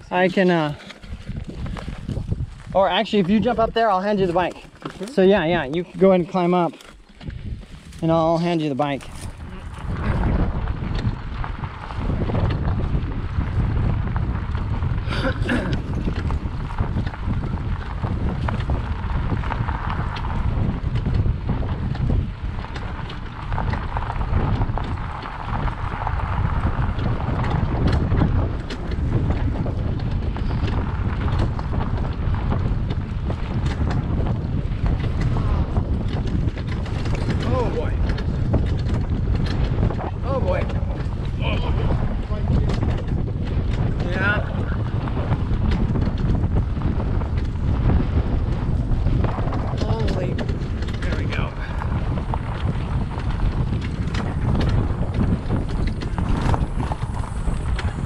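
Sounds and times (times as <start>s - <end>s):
bicycle riding on dirt track: 0.0s - 58.0s
low rumble: 0.0s - 58.0s
wind buffeting microphone: 0.0s - 58.0s.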